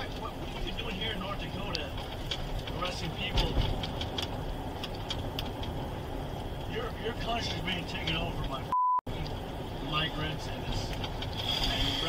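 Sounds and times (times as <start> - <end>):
engine and road rumble: 0.0 - 12.0.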